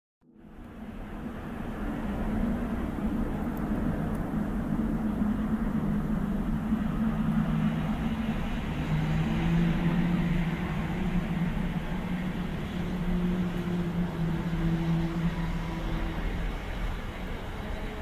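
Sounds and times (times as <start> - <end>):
background rumble: 0.3 - 18.0
low droning hum of held tones: 0.3 - 18.0.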